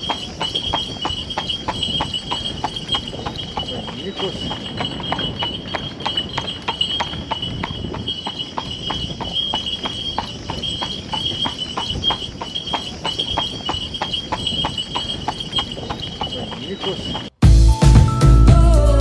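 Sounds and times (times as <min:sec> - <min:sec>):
horse hooves clip-clopping on asphalt: 0:00.0 - 0:17.4.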